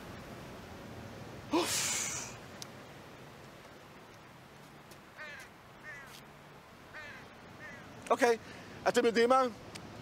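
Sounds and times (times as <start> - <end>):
bird calling faintly: 5.2 - 6.3, 6.9 - 8.1.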